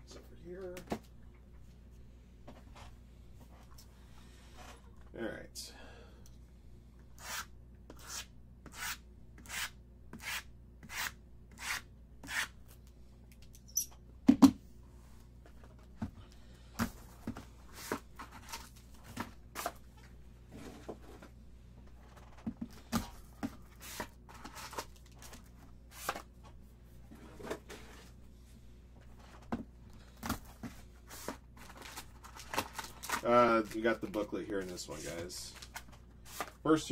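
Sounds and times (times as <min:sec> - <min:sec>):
wrap and cardboard tearing rustling: 0:31.6 - 0:36.6.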